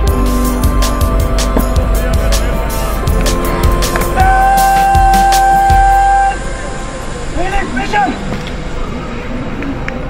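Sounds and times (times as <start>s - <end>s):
held musical note: 0.0s - 7.8s.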